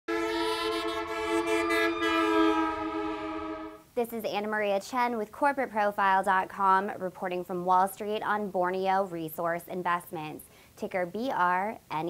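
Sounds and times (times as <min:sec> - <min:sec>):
sustained horn-like chord: 0:00.1 - 0:03.8.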